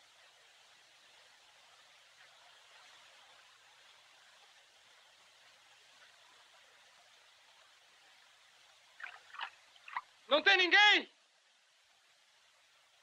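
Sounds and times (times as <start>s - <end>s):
film soundtrack hiss: 0.0s - 13.0s.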